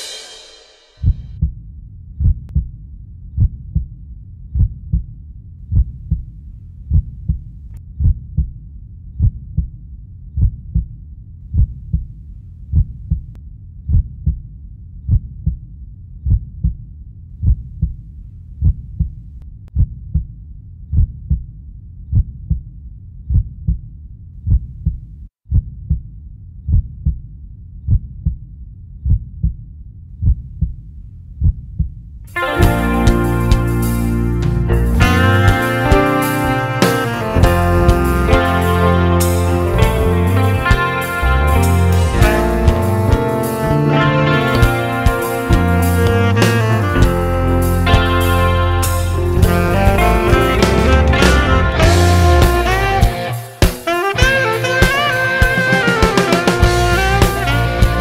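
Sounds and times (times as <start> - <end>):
heartbeat thumps: 5.7 - 8.6, 11.5 - 14.5, 17.4 - 20.3, 30.2 - 36.2, 36.8 - 39.2, 39.8 - 48.4.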